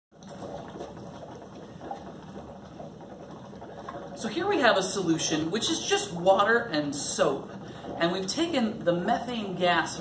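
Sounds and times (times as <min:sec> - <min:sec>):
gas bubbling through soapy water: 0:00.1 - 0:10.0.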